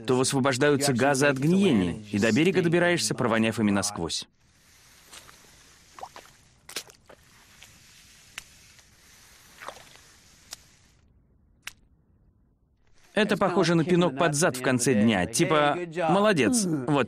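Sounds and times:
low hiss: 0:00.1 - 0:11.6
kayak hauled across mud: 0:04.6 - 0:10.8
boots squelching in mud: 0:06.0 - 0:07.2.

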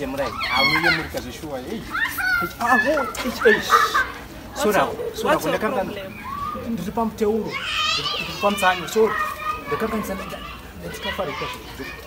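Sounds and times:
man and woman arguing: 0:00.0 - 0:12.0.

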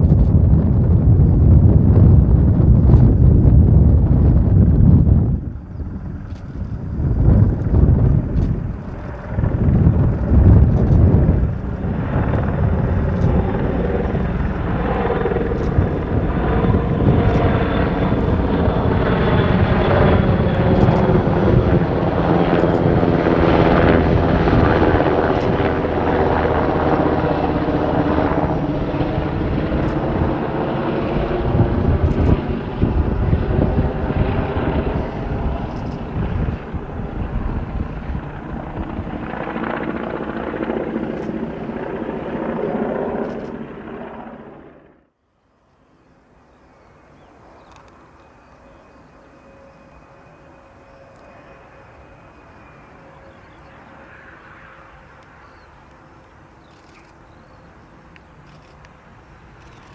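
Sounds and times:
helicopter flying past: 0:00.0 - 0:45.2, 0:45.9 - 0:59.9.

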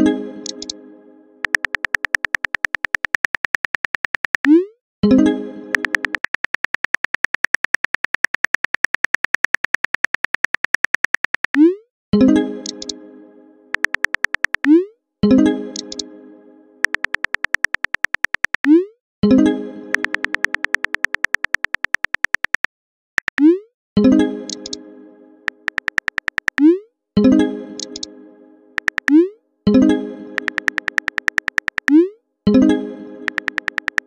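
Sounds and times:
phone keyboard tap clicks: 0:01.4 - 0:04.5, 0:05.7 - 0:11.6, 0:13.8 - 0:14.7, 0:16.8 - 0:18.7, 0:19.9 - 0:23.4, 0:24.5 - 0:24.8, 0:25.5 - 0:26.6, 0:28.8 - 0:29.2, 0:30.4 - 0:32.0, 0:33.3 - 0:34.0.

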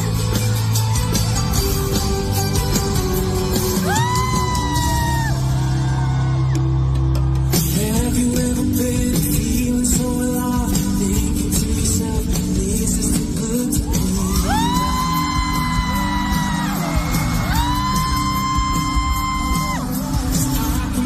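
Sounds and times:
live pop band playing: 0:00.0 - 0:21.0.

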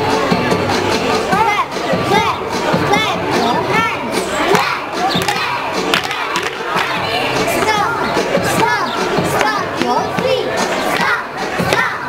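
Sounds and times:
girls shouting and cheering: 0:01.3 - 0:12.0.

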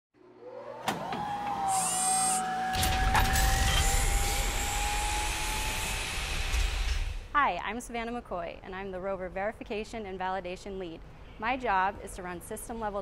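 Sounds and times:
rising whine into high tone: 0:00.3 - 0:07.3.

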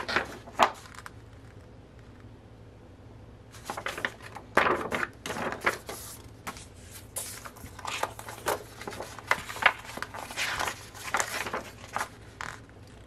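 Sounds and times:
stiff paper rustling and crinkling: 0:00.0 - 0:01.1, 0:03.6 - 0:13.0.

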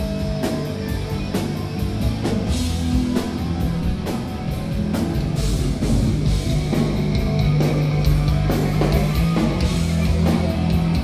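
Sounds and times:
drum and cymbal hits: 0:00.0 - 0:11.0
heavy metal band playing live: 0:00.0 - 0:11.0.

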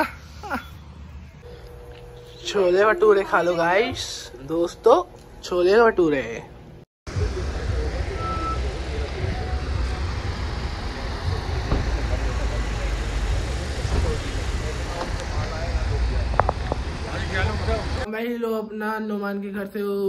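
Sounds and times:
cars running and moving: 0:00.0 - 0:18.1
background voices: 0:06.4 - 0:18.1
short beeps: 0:08.2 - 0:08.7.

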